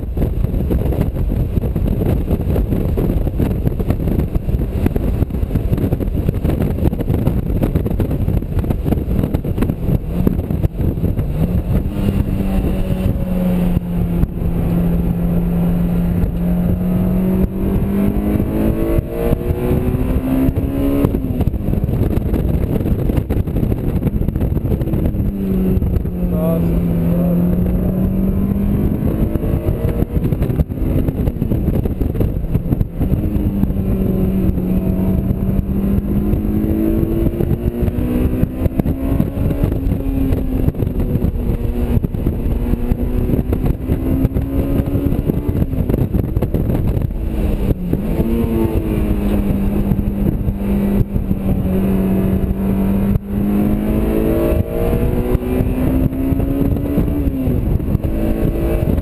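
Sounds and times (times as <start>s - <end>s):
car engine revving: 0.0s - 59.0s
road and wind noise: 0.0s - 59.0s.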